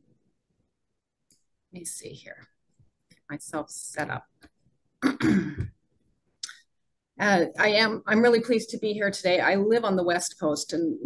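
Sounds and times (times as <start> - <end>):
woman clearing throat: 5.0 - 5.8.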